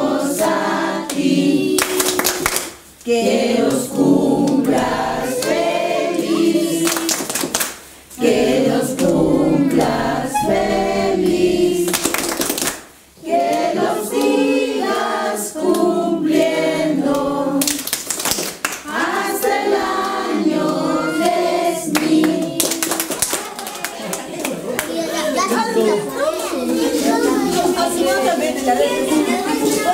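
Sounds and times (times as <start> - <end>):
group singing a birthday song: 0.0 - 29.9.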